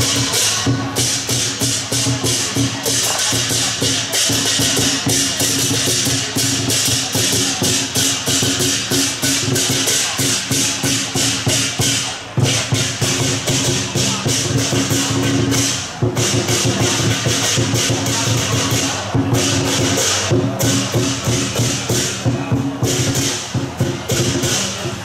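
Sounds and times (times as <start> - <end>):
hand cymbals clashing: 0.0 - 25.0
large drum beating: 0.0 - 25.0.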